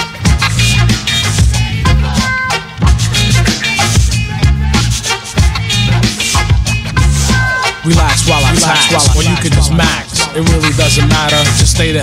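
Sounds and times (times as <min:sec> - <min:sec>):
hip-hop music with vocal: 0:00.0 - 0:12.0.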